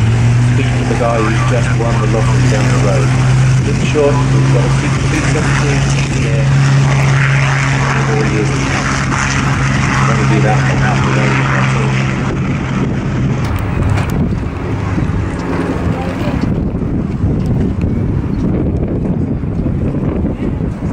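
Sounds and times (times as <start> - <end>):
propeller aircraft engine drone: 0.0 - 20.9.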